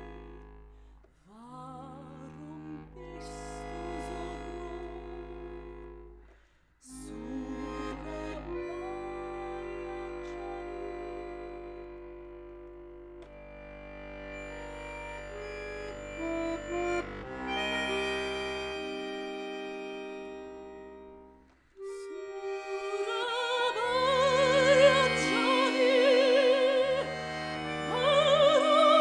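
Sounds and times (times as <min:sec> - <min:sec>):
accordion playing chords: 0:00.0 - 0:29.0.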